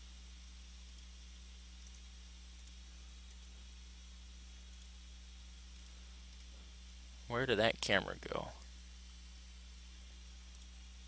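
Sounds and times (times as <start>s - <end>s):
low electrical hum: 0.0s - 11.0s
faint clicks: 0.8s - 1.1s, 1.8s - 3.5s, 4.7s - 4.9s, 5.7s - 6.5s, 10.5s - 10.7s.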